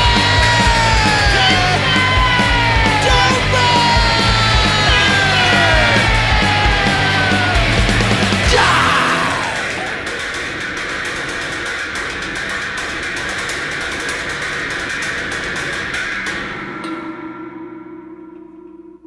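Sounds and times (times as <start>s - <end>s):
punk rock band chord ringing: 0.0s - 15.0s.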